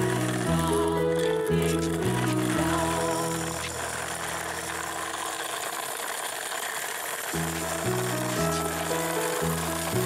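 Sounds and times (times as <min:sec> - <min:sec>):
background music: 0:00.0 - 0:05.1, 0:07.4 - 0:10.0
toy wheels rolling over concrete: 0:00.0 - 0:10.0.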